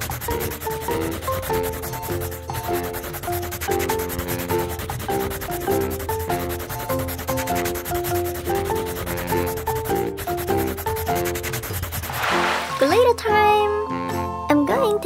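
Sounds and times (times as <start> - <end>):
marker pen scratching on paper: 0.0 - 12.9
background music with stepping melody: 0.0 - 15.0.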